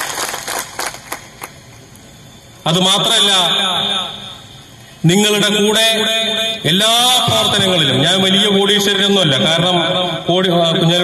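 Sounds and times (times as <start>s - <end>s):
sharp hand claps: 0.0s - 1.6s.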